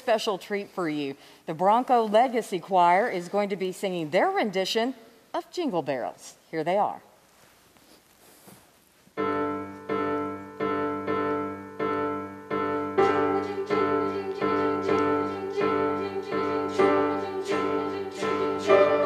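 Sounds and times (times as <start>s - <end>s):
piano chords and notes: 9.2s - 19.0s.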